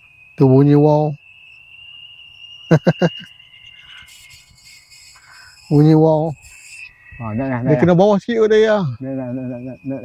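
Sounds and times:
kite hummer whining: 0:00.0 - 0:10.0.

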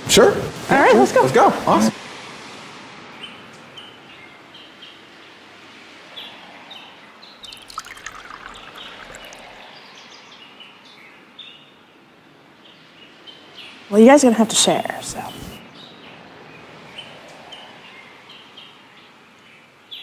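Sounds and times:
wine pouring into a paper cup: 0:07.4 - 0:09.8
faint outdoor hiss: 0:07.4 - 0:16.6.

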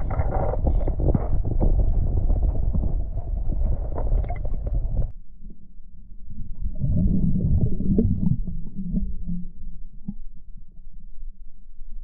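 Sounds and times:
muffled underwater river sloshing: 0:00.0 - 0:12.0.

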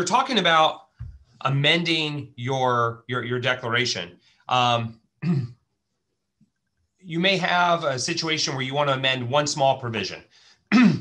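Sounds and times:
man clearing throat: 0:05.2 - 0:05.6, 0:10.7 - 0:11.0.

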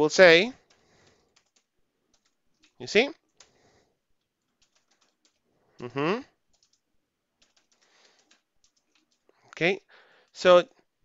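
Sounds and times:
keyboard keystroke clicks: 0:07.4 - 0:09.3.

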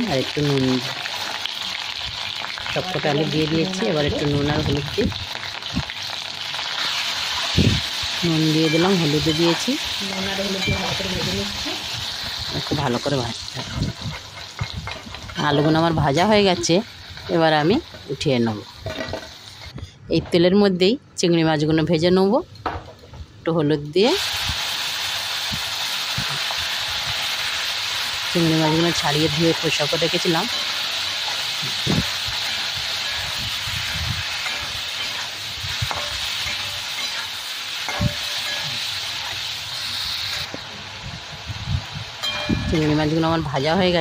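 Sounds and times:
potato wedges sizzling in oil: 0:00.0 - 0:19.7, 0:23.9 - 0:44.0.

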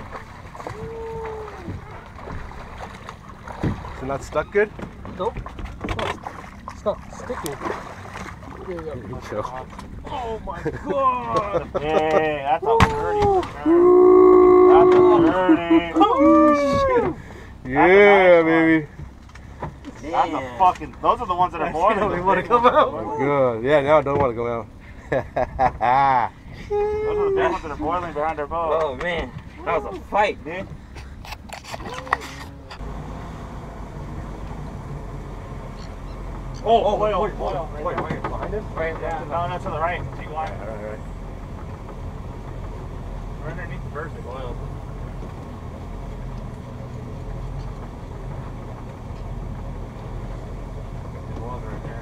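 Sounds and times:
boat engine idling: 0:00.0 - 0:52.0
water noise: 0:00.0 - 0:52.0
excited voices: 0:00.7 - 0:02.0, 0:10.1 - 0:17.2, 0:25.9 - 0:27.8.

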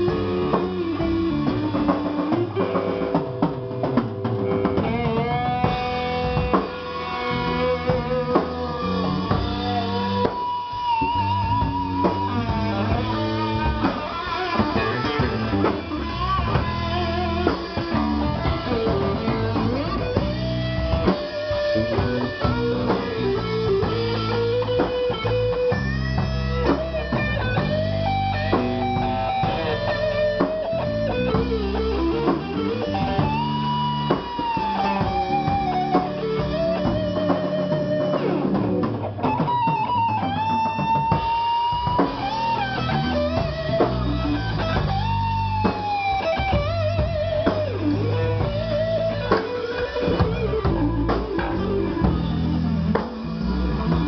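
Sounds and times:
bass guitar: 0:00.0 - 0:54.0
drum kit: 0:00.0 - 0:54.0
electric guitar solo: 0:00.0 - 0:54.0.

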